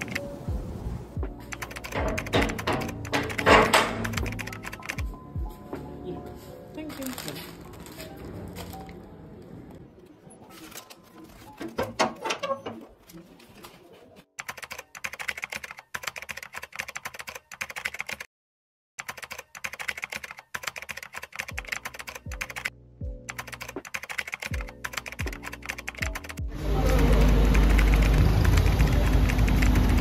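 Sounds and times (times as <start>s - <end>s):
metal door bolt clanking: 1.9s - 4.3s, 11.6s - 13.0s.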